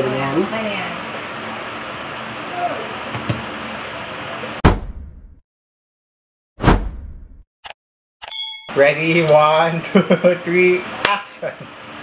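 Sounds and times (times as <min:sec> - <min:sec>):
electric fan hum: 0:00.0 - 0:04.6, 0:08.6 - 0:12.0.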